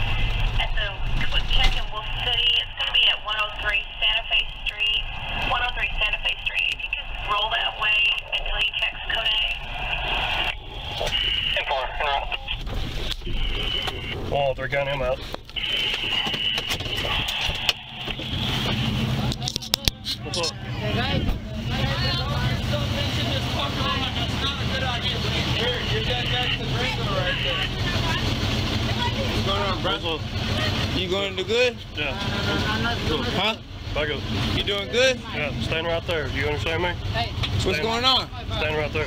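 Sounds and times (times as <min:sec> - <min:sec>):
car interior rumble: 0:00.0 - 0:39.0
vehicle idling with whine: 0:00.0 - 0:39.0
muffled voice talking: 0:11.0 - 0:12.6.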